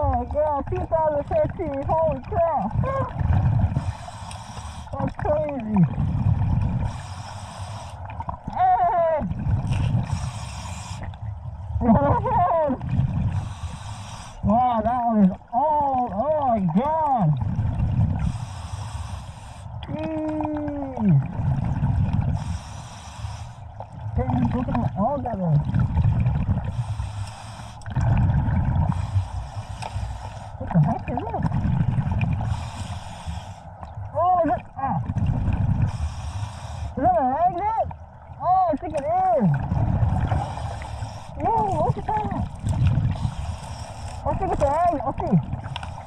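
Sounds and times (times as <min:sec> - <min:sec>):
underwater exhale bubbling: 0:02.5 - 0:14.5, 0:17.1 - 0:37.0, 0:39.3 - 0:46.0
regulator inhale hiss: 0:03.8 - 0:05.0, 0:06.8 - 0:08.2, 0:10.0 - 0:11.2, 0:13.3 - 0:14.4, 0:18.2 - 0:19.8, 0:22.4 - 0:23.7, 0:26.6 - 0:27.9, 0:28.8 - 0:30.6, 0:32.4 - 0:33.8, 0:35.8 - 0:37.0, 0:40.3 - 0:41.4, 0:43.1 - 0:44.2, 0:45.7 - 0:46.0.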